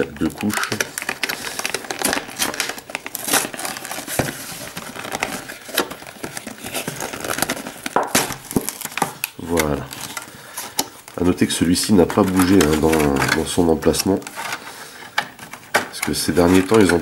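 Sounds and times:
plastic packaging crinkling: 0.0s - 17.0s.

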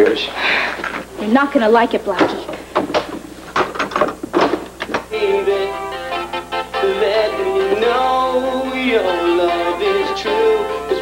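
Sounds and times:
cassette player being handled: 2.1s - 5.1s.

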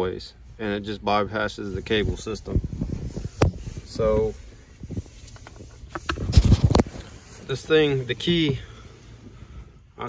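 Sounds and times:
phone handling rustles and clicks: 5.2s - 7.2s.

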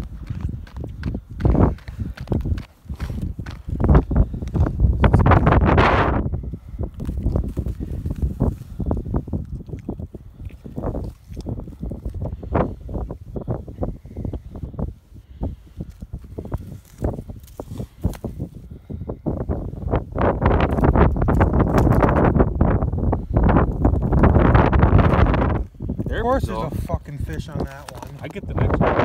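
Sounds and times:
crunching snow and ice: 0.0s - 29.0s.

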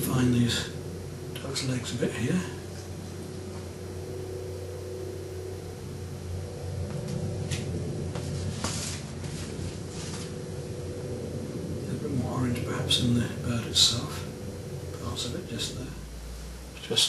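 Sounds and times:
steady low hum: 0.0s - 17.0s
brush strokes on canvas: 7.4s - 10.5s.

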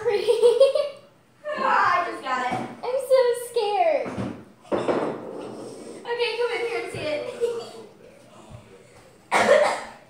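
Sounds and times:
girl coughing: 9.3s - 10.0s.

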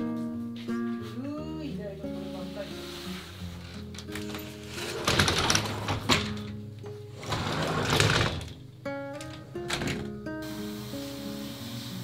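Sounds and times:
soft background music: 0.0s - 12.0s
sliding glass door rattling: 3.2s - 10.2s.

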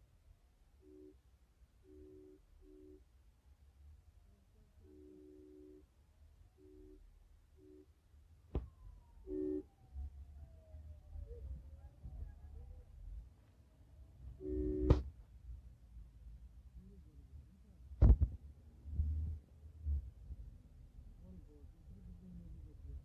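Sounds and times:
distant wailing siren: 8.6s - 15.0s.

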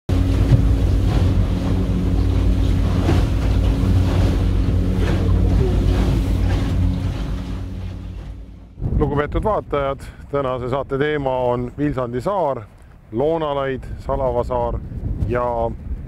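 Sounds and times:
motorboat engine running: 0.1s - 9.6s
water splashing against hull: 0.1s - 10.3s.

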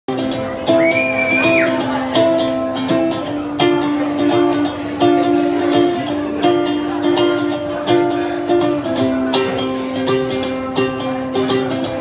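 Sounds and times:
ukulele plucked notes and chords: 0.1s - 12.0s.

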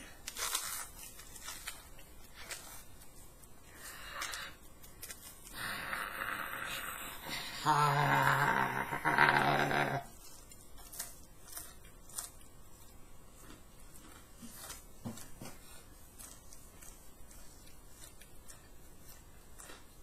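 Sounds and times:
crunching crispy batter: 0.0s - 5.6s, 9.0s - 20.0s
man humming while chewing: 5.6s - 10.2s.

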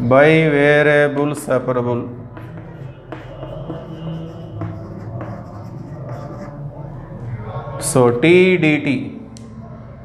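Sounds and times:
chalk scratching on a blackboard: 2.2s - 6.8s.

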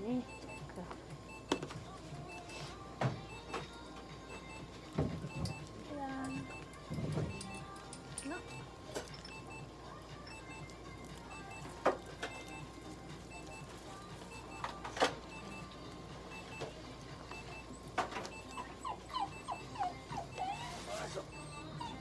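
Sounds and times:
dog whimpering: 18.3s - 22.0s.

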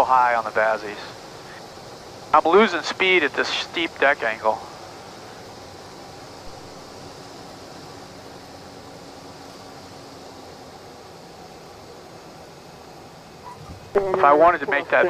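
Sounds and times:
airplane cockpit engine hiss: 0.0s - 15.0s.

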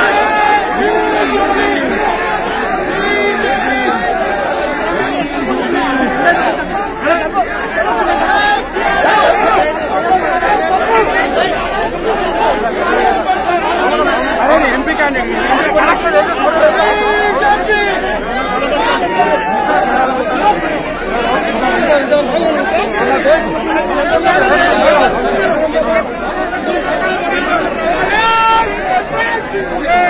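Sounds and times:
crowd of men talking and shouting: 0.0s - 30.0s.

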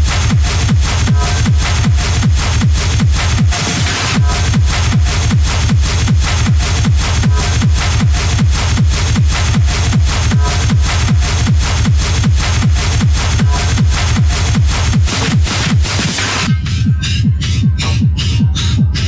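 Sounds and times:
hard techno music: 0.0s - 19.0s
kick drum: 0.0s - 19.0s
sharp percussion hits: 3.4s - 19.0s.

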